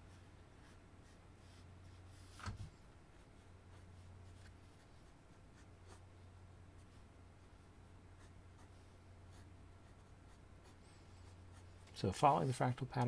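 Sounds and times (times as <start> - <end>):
low steady hum: 0.0 - 13.0
pencil scratching on paper: 0.1 - 2.2, 5.5 - 6.0, 8.2 - 12.9.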